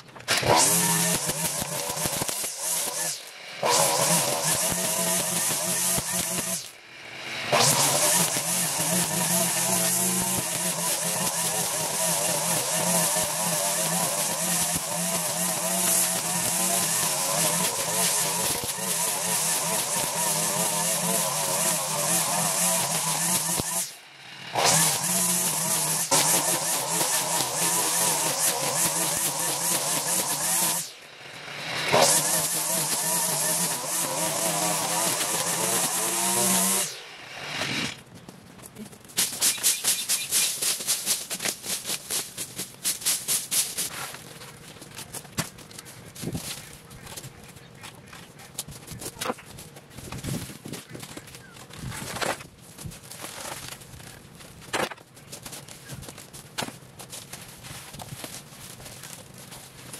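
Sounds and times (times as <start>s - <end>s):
string trimmer cutting grass: 0.2s - 38.1s, 39.0s - 59.9s.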